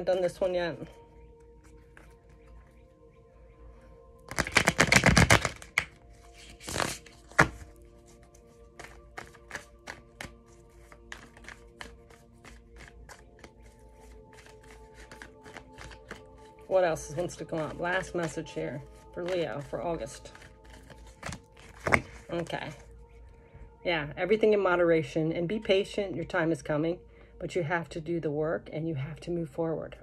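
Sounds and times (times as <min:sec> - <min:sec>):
soft background music: 0:00.0 - 0:30.0
cards tapping: 0:04.3 - 0:07.7, 0:08.7 - 0:16.4, 0:17.2 - 0:22.2
cards shuffling: 0:04.3 - 0:22.8.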